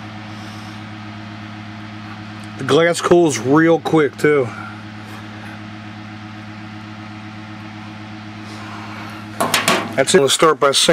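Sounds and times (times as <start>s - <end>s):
steady low hum: 0.0s - 10.9s.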